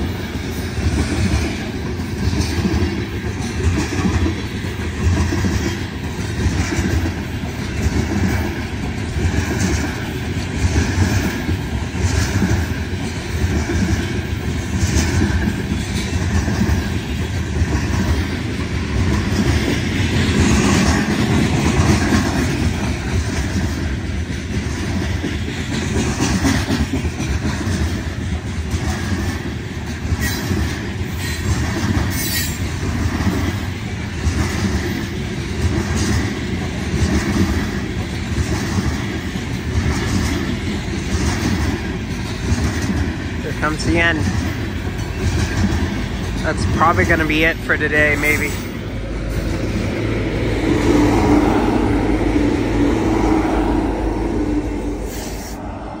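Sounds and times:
freight train rumbling past: 0:00.0 - 0:56.0
wheels clattering over rail joints: 0:00.8 - 0:52.3.

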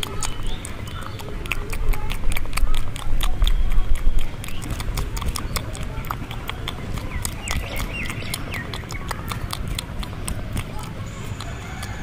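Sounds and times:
sharp clicks at microphone: 0:00.0 - 0:12.0.

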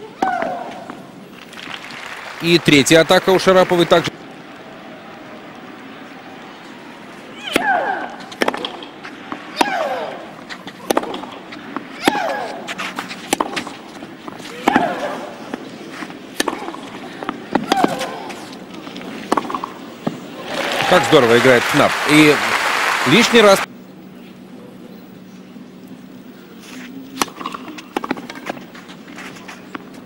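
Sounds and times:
applause: 0:01.4 - 0:04.1, 0:20.4 - 0:23.7
tennis ball strikes: 0:07.4 - 0:18.6, 0:19.2 - 0:20.2, 0:27.2 - 0:28.6.

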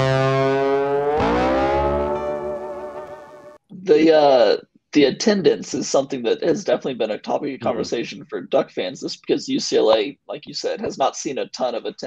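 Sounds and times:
distorted electric guitar chord: 0:00.0 - 0:03.6.

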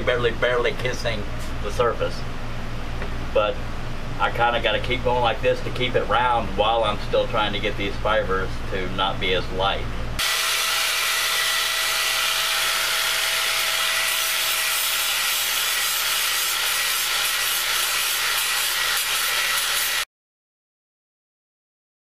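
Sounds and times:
angle grinder grinding: 0:10.2 - 0:20.1.

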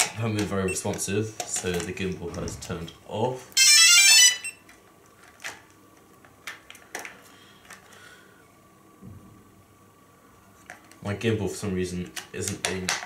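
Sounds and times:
faint steady high tone: 0:03.5 - 0:04.6.

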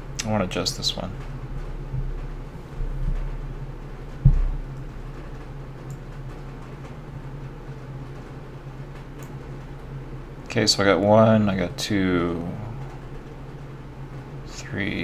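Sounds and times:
low room hum: 0:00.0 - 0:15.0
dull low thump: 0:01.9 - 0:03.4, 0:04.2 - 0:05.0.

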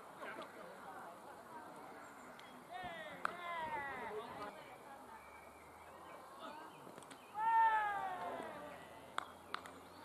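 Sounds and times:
cricketer shouting: 0:07.4 - 0:09.0.

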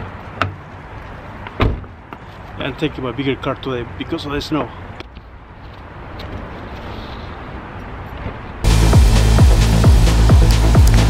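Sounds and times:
music with heavy beat and bass: 0:08.7 - 0:11.0.

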